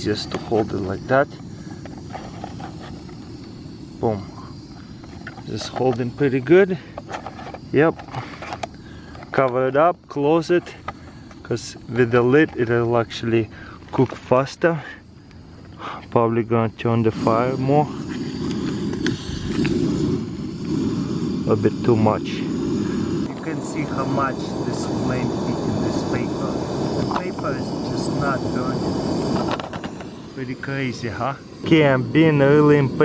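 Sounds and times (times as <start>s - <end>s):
gas stove burner flame rushing: 0.0s - 9.8s, 17.0s - 33.0s.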